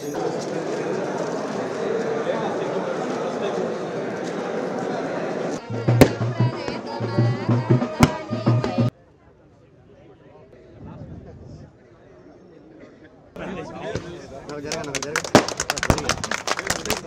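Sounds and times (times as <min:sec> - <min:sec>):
crowd chatter: 0:00.0 - 0:17.0
festive music with heavy drumbeat: 0:05.6 - 0:08.9
sharp cracks: 0:15.2 - 0:16.3.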